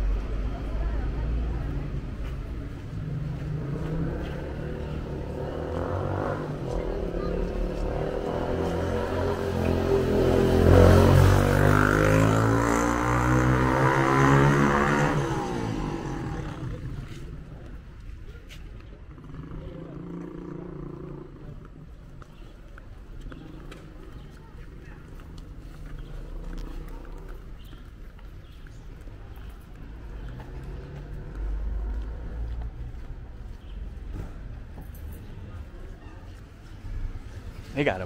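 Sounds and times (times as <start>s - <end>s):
faint voices: 0.0s - 10.4s, 15.2s - 38.0s
low rumble of traffic: 0.0s - 38.0s.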